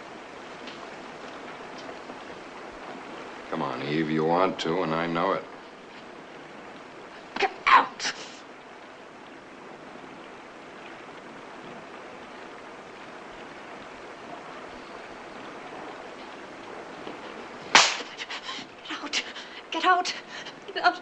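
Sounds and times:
heavy rain falling: 0.0 - 21.0.

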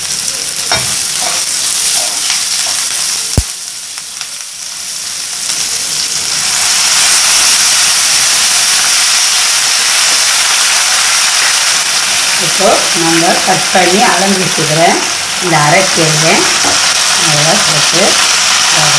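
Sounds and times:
onions sizzling in hot oil: 0.0 - 18.9
water sizzling and bubbling in pan: 0.0 - 18.9.

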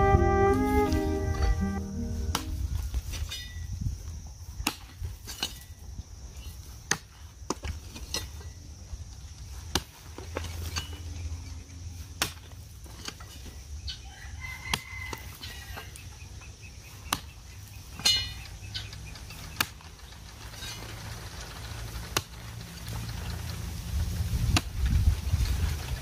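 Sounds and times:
hoe chopping into dry soil: 4.6 - 5.8, 9.6 - 11.0, 12.2 - 13.5, 17.1 - 17.4, 19.6 - 19.8, 24.5 - 24.8.

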